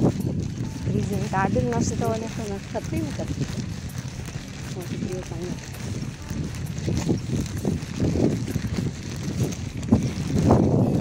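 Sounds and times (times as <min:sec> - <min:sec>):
microphone handling noise: 0:00.0 - 0:11.0
wind rumble: 0:00.0 - 0:11.0
woman speaking: 0:00.9 - 0:03.3.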